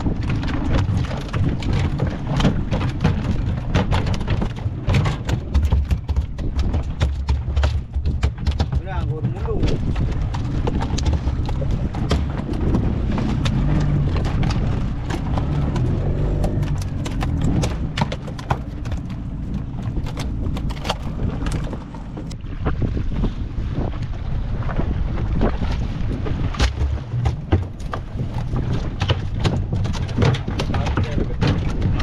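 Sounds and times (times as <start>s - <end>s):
fish slapping on boat deck: 0.0s - 23.1s, 24.7s - 32.0s
wind rumble on microphone: 0.0s - 32.0s.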